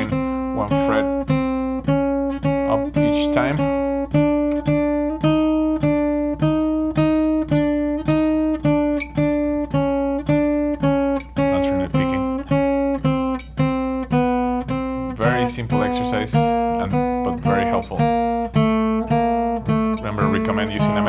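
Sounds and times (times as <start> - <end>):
fingerstyle acoustic guitar notes: 0.0 - 21.0.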